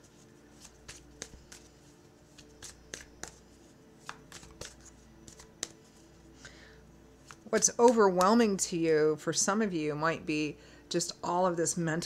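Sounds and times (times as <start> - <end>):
cards snapping: 0.6 - 1.7, 2.3 - 3.4, 4.0 - 5.8, 7.2 - 8.2.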